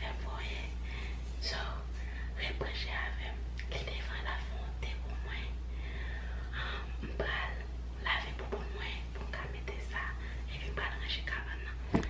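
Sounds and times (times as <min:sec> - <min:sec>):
woman whispering: 0:00.0 - 0:05.6, 0:06.5 - 0:12.0
steady low hum: 0:00.0 - 0:12.0.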